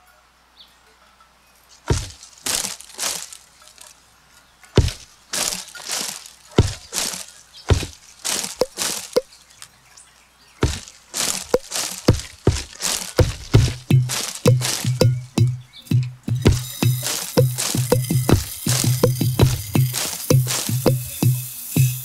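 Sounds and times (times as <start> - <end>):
twigs and leaves rustling: 1.6 - 22.0
deep thuds on tree branches: 1.8 - 3.9, 4.8 - 9.7, 10.6 - 22.0.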